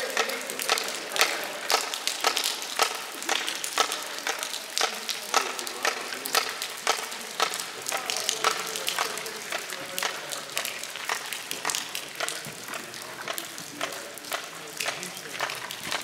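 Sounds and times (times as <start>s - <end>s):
rain patter: 0.0s - 16.0s.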